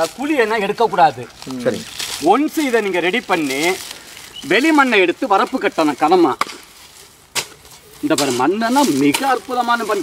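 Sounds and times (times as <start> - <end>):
man speaking: 0.0 - 3.8, 4.4 - 6.4, 8.0 - 10.0.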